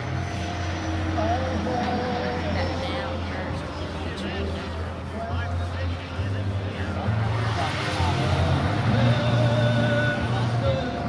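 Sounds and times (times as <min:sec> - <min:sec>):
faint background voices: 0:00.0 - 0:11.0
low engine drone: 0:00.0 - 0:11.0.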